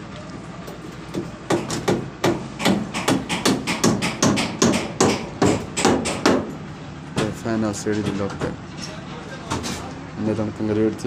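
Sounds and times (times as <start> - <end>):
hammer blows: 1.1 - 6.6.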